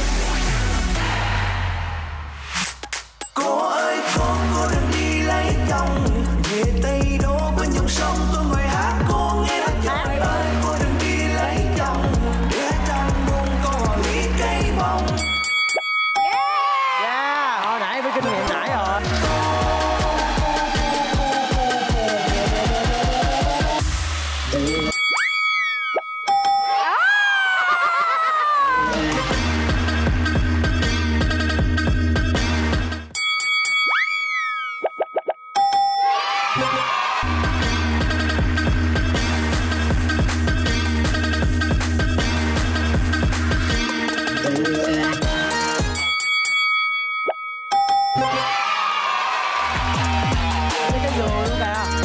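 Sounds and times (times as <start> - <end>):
dance music beat: 0.0 - 15.4, 17.7 - 24.9, 28.7 - 33.1, 36.7 - 46.1, 49.6 - 52.0
ringing chime tones: 15.2 - 16.9, 24.6 - 27.0, 33.2 - 36.8, 45.9 - 48.5.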